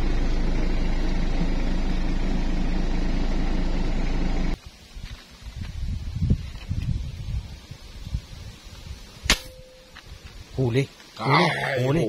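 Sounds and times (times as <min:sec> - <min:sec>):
airgun shot crack: 0:09.3 - 0:09.6
short ringing tone: 0:09.5 - 0:10.0.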